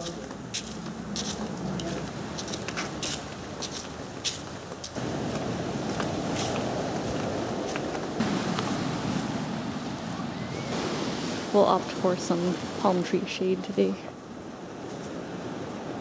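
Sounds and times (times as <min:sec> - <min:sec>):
wind on microphone: 0:00.0 - 0:12.8
ocean surf washing: 0:00.0 - 0:16.0.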